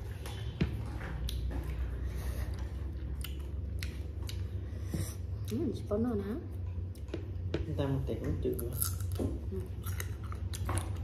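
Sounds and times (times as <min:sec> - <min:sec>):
crunchy mango being chewed: 0:00.0 - 0:05.6, 0:08.6 - 0:11.0
low steady hum: 0:00.0 - 0:11.0.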